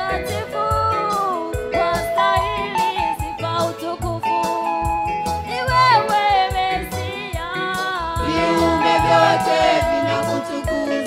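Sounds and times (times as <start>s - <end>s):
woman singing gospel song: 0.0s - 4.4s, 5.5s - 11.0s
live band with bass guitar: 0.0s - 11.0s.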